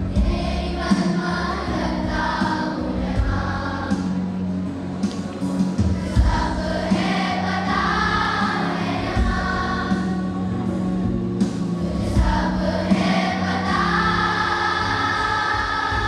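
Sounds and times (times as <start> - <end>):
children's choir singing: 0.0 - 4.6, 5.8 - 16.0.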